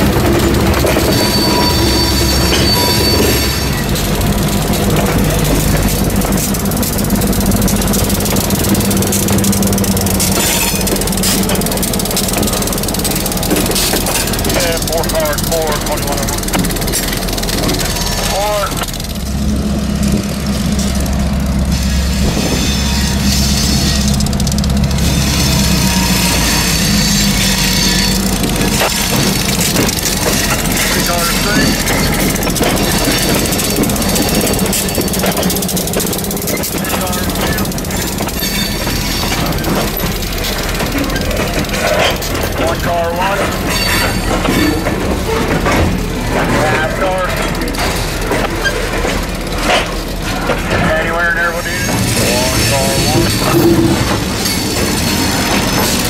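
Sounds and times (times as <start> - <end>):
diesel locomotive engine running: 0.0 - 56.0
wheels rumbling on rails: 0.0 - 56.0.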